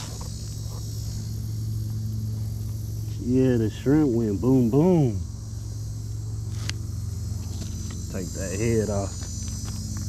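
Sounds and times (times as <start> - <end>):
distant motor humming: 0.0 - 10.0.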